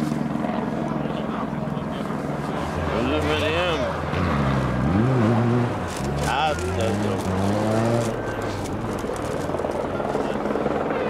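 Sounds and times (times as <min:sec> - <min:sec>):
rally car engine: 0:02.4 - 0:09.9
rally car accelerating: 0:04.0 - 0:08.4.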